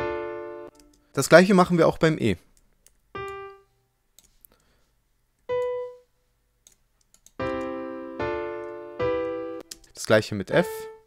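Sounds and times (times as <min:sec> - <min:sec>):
piano notes and chords: 0:00.0 - 0:01.0, 0:03.2 - 0:03.7, 0:05.5 - 0:06.1, 0:07.4 - 0:11.0.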